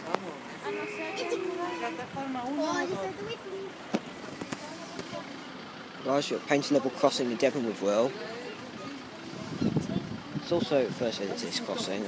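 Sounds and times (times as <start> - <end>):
faint street background noise: 0.0 - 12.0.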